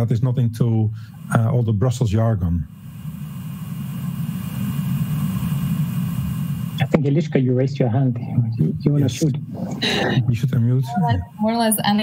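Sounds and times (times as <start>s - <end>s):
person speaking: 6.8s - 11.4s.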